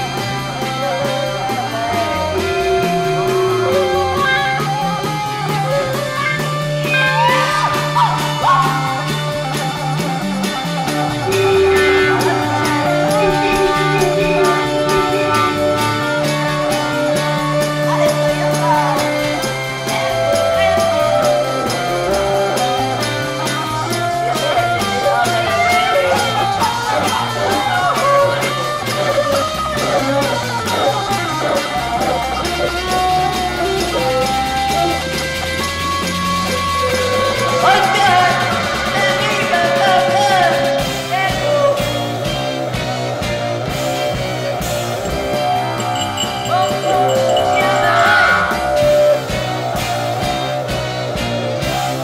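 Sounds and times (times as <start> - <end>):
electric guitar bending notes: 0.0 - 41.1, 41.8 - 52.0
bass line: 0.0 - 52.0
steady drum beat: 0.0 - 52.0.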